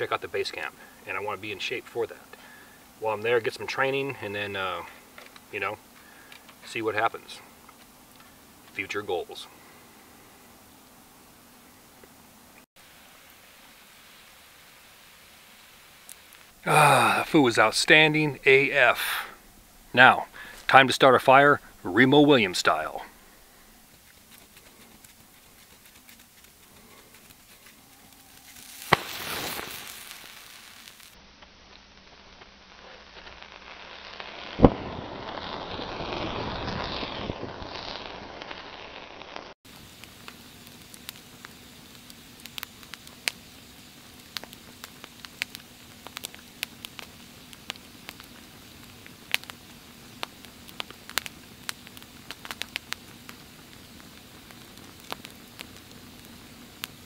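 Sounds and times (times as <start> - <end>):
campfire crackling: 0.0 - 57.0.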